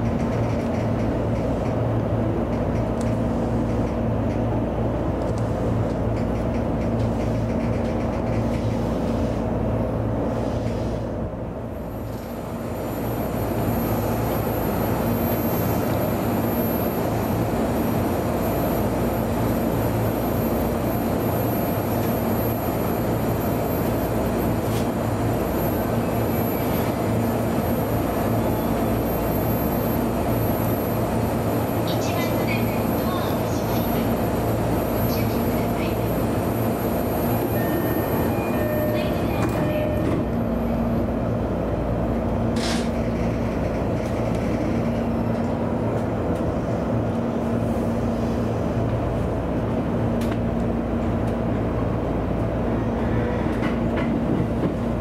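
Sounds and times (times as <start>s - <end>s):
electric train hum: 0.0s - 55.0s.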